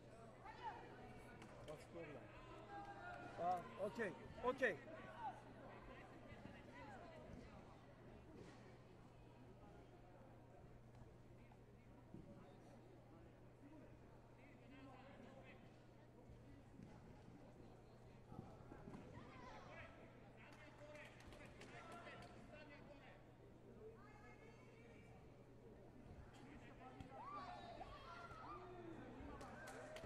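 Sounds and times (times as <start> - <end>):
sports hall ambience: 0.0 - 30.0.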